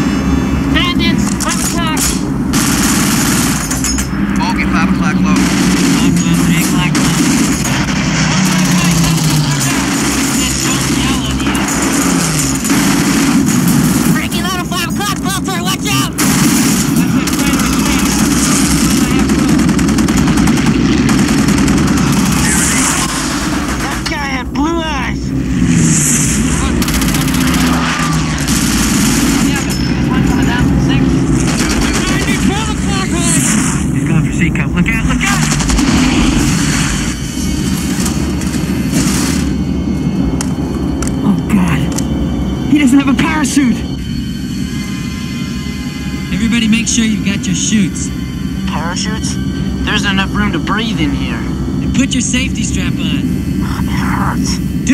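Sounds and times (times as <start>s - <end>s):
fighter planes whining past: 0.0s - 54.9s
piston engines droning: 0.0s - 54.9s
heavy machine-gun fire: 1.3s - 14.7s, 15.9s - 24.4s, 25.7s - 30.4s, 31.1s - 33.9s, 34.9s - 39.7s
voices shouting: 26.7s - 28.7s.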